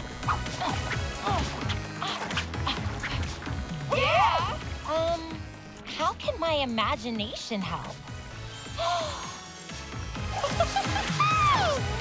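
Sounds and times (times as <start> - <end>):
background score music: 0.0 - 12.0.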